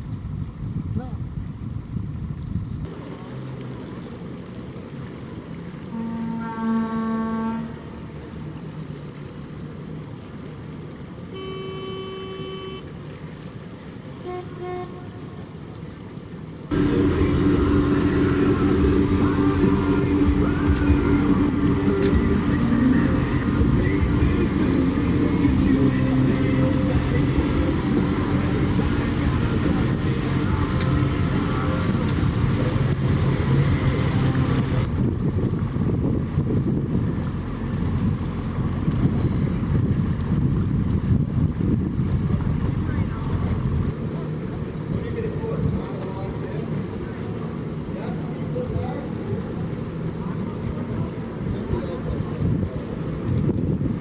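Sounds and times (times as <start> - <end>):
boat engine running: 0.0 - 54.0
wind and water noise: 0.0 - 54.0
horn toot: 5.9 - 7.9, 11.3 - 12.9.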